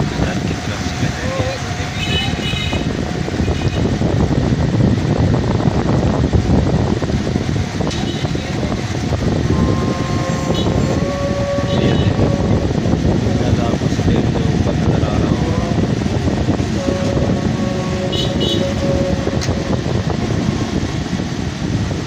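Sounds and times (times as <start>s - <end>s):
road noise: 0.0s - 22.0s
steady tone: 0.0s - 22.0s
vehicle engine rumble: 0.0s - 22.0s.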